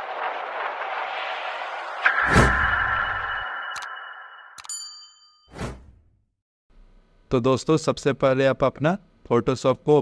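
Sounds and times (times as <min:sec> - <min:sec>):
low rumble: 0:00.0 - 0:04.6
whoosh: 0:00.0 - 0:04.7
bright ding with ringing tail: 0:02.0 - 0:05.5
sharp click: 0:03.7 - 0:03.9.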